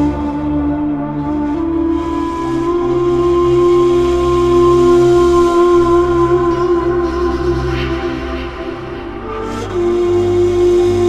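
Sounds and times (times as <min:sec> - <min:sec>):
breathy reed flute note: 0:00.0 - 0:11.0
low sustained drone: 0:00.0 - 0:11.0.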